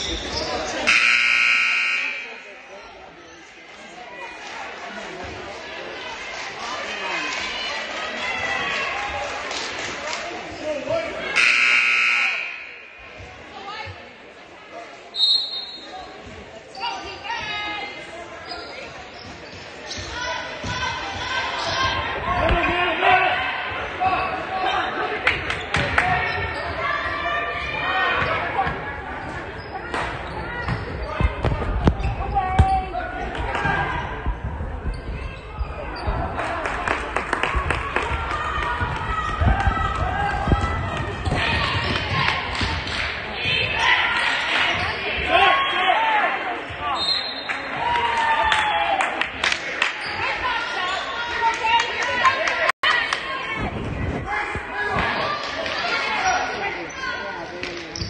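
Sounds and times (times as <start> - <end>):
voices calling out in a gym: 0.0 - 58.0.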